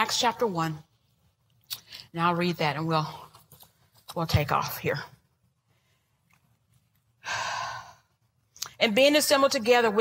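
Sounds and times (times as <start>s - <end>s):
woman breathing loudly: 7.2s - 8.1s.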